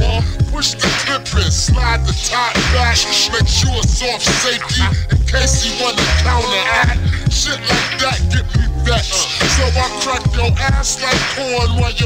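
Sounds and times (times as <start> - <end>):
slowed hip hop track: 0.0 - 12.0.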